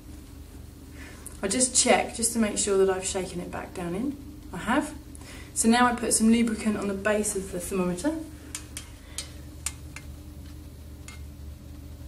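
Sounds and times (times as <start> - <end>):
steady low hum: 0.0 - 12.0
glass thermometer clicking on metal dish: 11.0 - 11.3.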